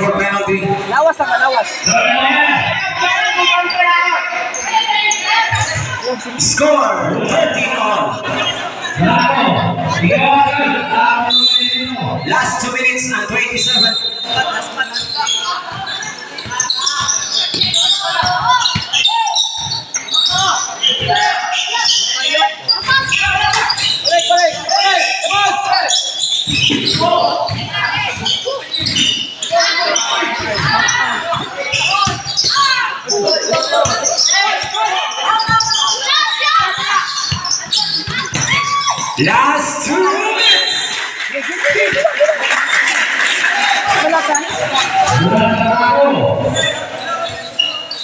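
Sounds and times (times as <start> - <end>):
voices of players and spectators: 0.0 - 48.0
basketball bouncing on court: 15.0 - 22.0, 26.4 - 32.8, 33.4 - 34.8, 35.4 - 39.2.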